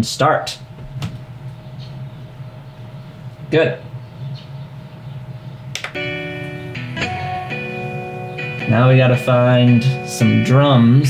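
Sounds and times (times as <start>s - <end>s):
low hum: 0.5s - 11.0s.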